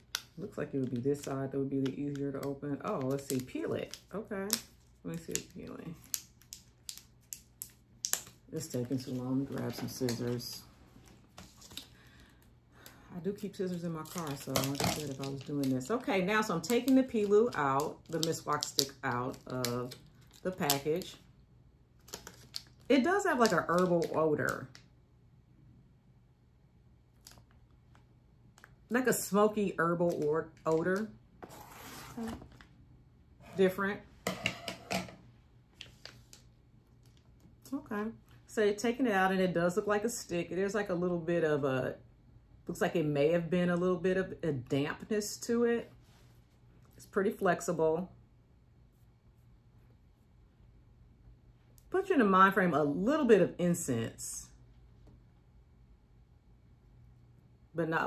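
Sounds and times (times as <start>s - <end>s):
plastic pouch crinkling: 13.8s - 21.2s, 22.0s - 24.1s.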